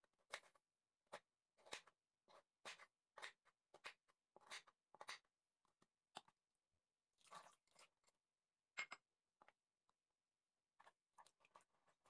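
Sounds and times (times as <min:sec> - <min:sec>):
knife chopping on wooden board: 0:01.1 - 0:05.3.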